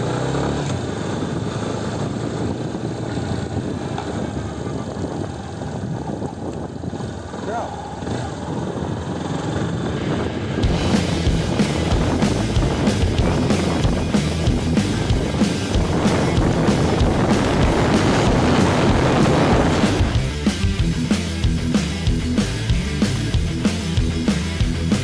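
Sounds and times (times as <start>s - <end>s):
motorcycle engine riding off: 0.0s - 25.0s
rock music with steady beat: 10.6s - 25.0s.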